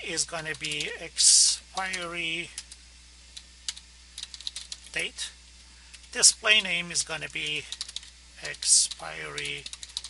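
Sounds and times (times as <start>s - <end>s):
typing on computer keyboard: 0.4s - 0.9s, 3.7s - 5.0s, 7.4s - 10.0s.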